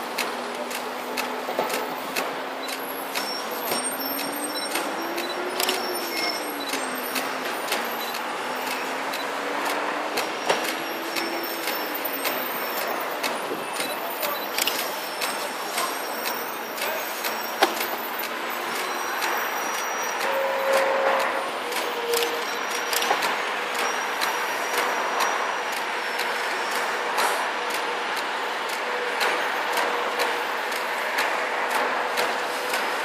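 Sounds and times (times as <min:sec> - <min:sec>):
road traffic: 0:00.0 - 0:33.0
sharp clicks: 0:00.0 - 0:33.0
faint high squeals: 0:02.8 - 0:08.1.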